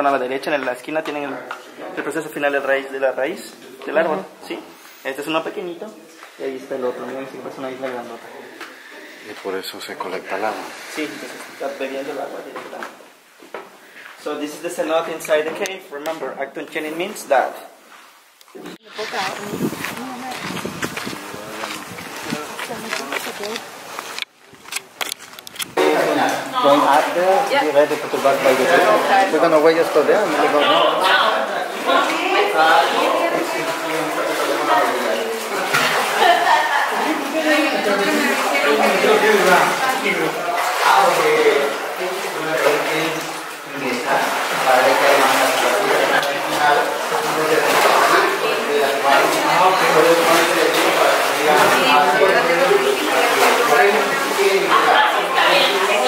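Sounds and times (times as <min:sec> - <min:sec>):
people talking: 0:18.6 - 0:23.6, 0:25.8 - 0:56.0.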